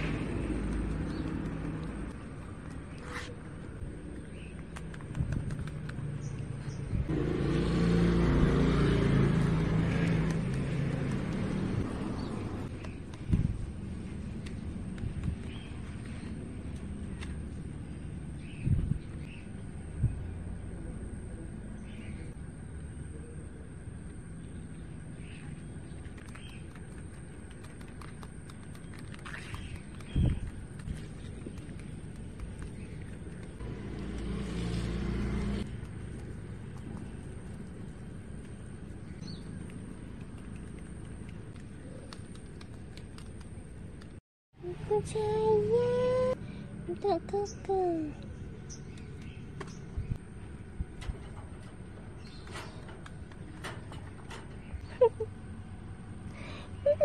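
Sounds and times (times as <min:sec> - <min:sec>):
vehicle engine hum: 0:00.0 - 0:57.0
vehicle engine driving past: 0:06.0 - 0:12.8, 0:32.8 - 0:38.0.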